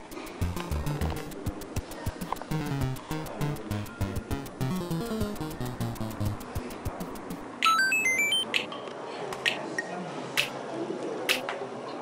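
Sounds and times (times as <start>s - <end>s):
sharp ticking: 0.0s - 7.8s
background music: 0.0s - 8.4s
rising electronic beeps: 0.4s - 8.5s.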